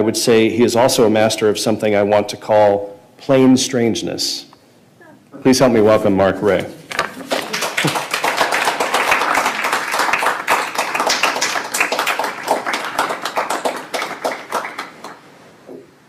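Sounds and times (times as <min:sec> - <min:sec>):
audience applauding: 0:06.9 - 0:15.3.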